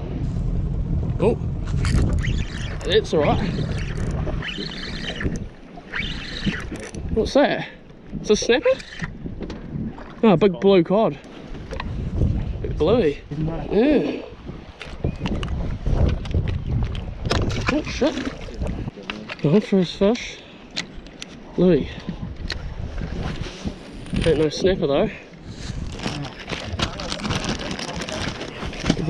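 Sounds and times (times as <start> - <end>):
low rumble: 0.0 - 4.4
knocks and handling rustles: 25.8 - 29.0
plastic bags crinkling: 25.9 - 28.5.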